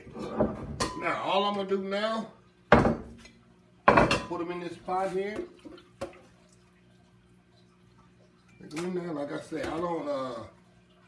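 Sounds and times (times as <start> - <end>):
faint dripping: 5.4 - 11.0.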